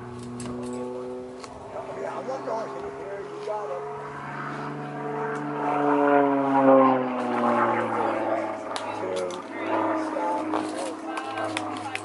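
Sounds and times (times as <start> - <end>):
propeller airplane engine drone: 0.0 - 12.0.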